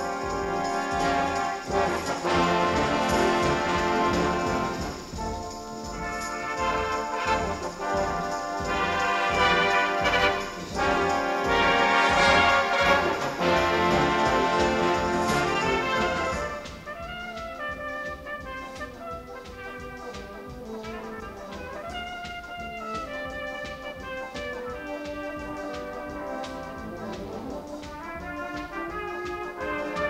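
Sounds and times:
brass band playing: 0.0s - 30.0s.

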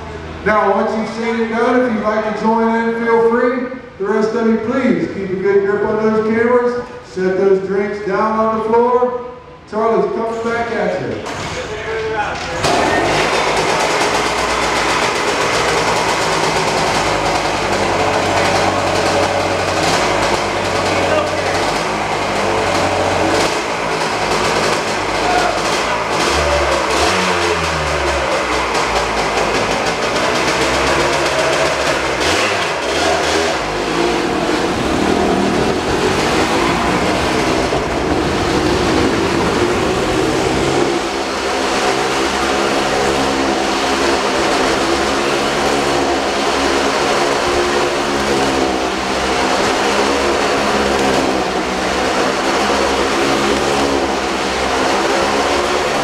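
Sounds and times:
motorcycle engine revving: 11.1s - 56.0s.

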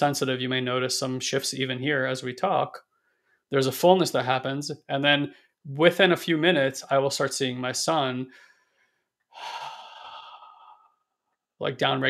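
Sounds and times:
man speaking: 0.0s - 2.8s, 3.5s - 8.3s, 9.4s - 10.6s, 11.6s - 12.0s
man breathing: 8.3s - 11.1s.

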